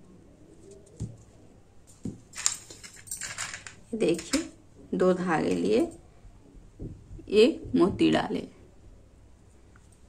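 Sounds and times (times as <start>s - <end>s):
plastic beads clinking: 2.3s - 4.4s.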